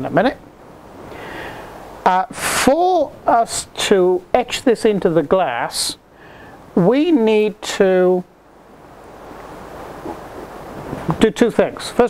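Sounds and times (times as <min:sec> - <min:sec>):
gale-force wind gusting: 0:00.0 - 0:12.0.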